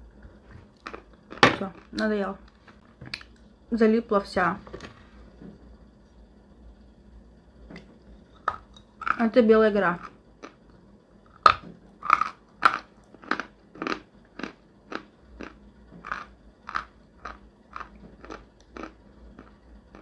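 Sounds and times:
crunchy chewing of clay: 0:11.3 - 0:20.0.

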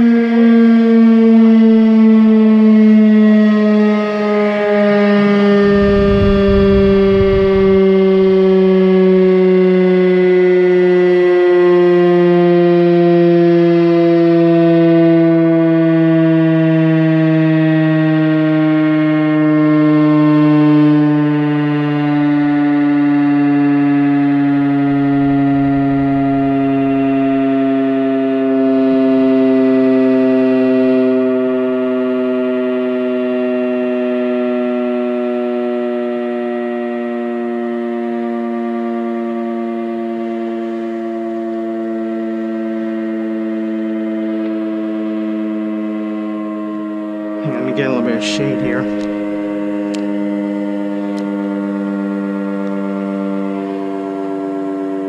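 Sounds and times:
warning siren with sinking pitch: 0:00.0 - 0:55.0.

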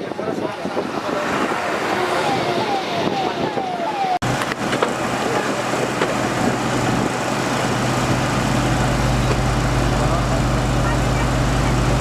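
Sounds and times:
distant voices: 0:00.0 - 0:12.0
wind: 0:00.0 - 0:12.0
emergency siren falling tone: 0:01.4 - 0:09.9.

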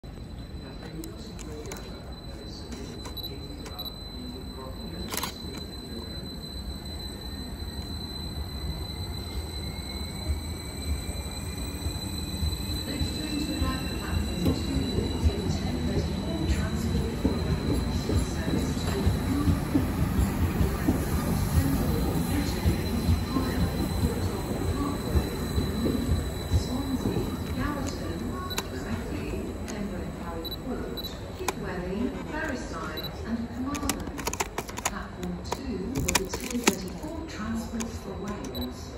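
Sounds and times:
passenger train passing: 0:00.0 - 0:38.9
steady high tone: 0:00.1 - 0:34.5.

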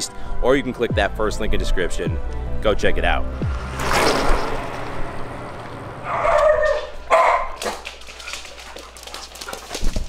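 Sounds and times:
dog barking: 0:06.0 - 0:07.9
dog claws clicking on hardwood: 0:07.3 - 0:10.0.

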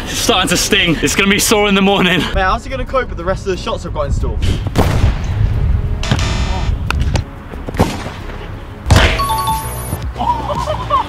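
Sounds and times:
low rumbling: 0:02.3 - 0:07.5.

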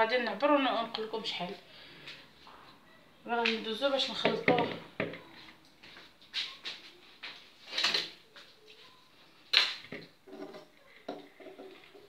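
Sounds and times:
plastic bowl knocking on tiles: 0:04.2 - 0:05.2, 0:09.8 - 0:12.0.

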